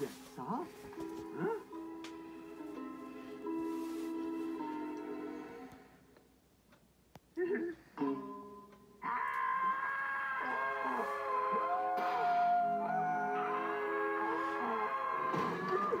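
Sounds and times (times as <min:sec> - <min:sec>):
cartoon voices screaming: 0:09.0 - 0:16.0.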